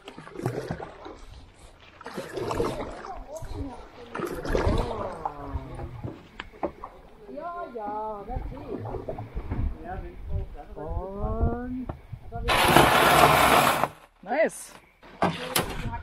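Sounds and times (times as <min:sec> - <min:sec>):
canoe hull grinding on gravel: 0:12.5 - 0:14.1.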